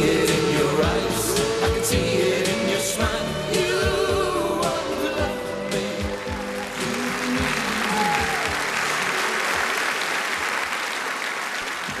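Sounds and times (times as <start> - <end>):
pop song: 0.0 - 9.2
audience applause: 5.7 - 12.0.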